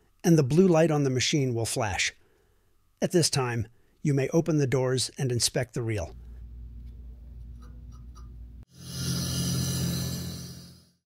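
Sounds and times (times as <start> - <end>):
low steady hum: 5.7 - 8.6
whooshing logo sting: 8.7 - 11.0.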